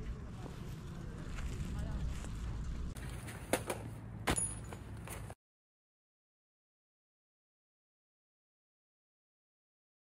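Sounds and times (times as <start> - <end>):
low outdoor rumble: 0.0 - 5.4.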